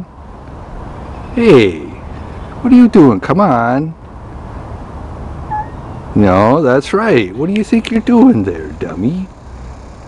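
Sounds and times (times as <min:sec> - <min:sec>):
outdoor background hum: 0:00.0 - 0:10.0
faint high call: 0:05.5 - 0:06.0.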